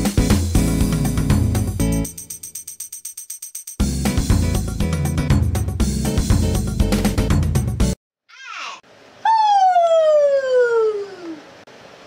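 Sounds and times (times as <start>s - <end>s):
woman whooping: 8.3s - 11.4s.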